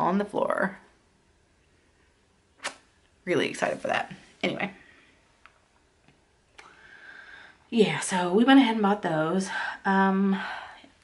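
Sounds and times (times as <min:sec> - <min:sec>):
short sharp click: 0:02.6 - 0:02.8.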